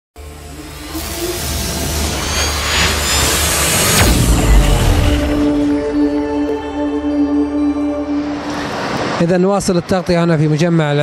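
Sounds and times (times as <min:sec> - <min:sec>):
deep low rumble: 0:00.2 - 0:07.0
logo intro music: 0:00.2 - 0:08.9
whooshing sweep: 0:00.2 - 0:09.2.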